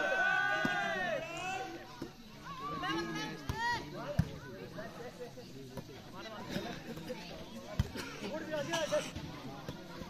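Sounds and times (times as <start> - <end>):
people shouting and calling: 0.0 - 3.9.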